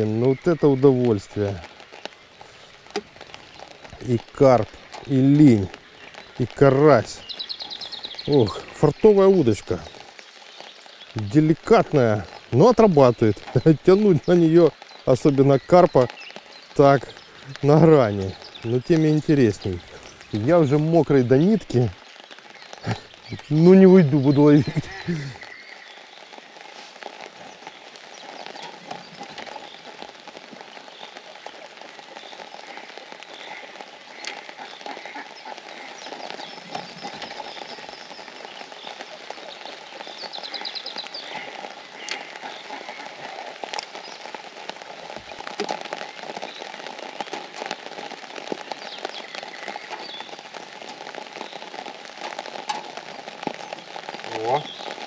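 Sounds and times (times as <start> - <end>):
rain falling on a pond: 0.0 - 55.0.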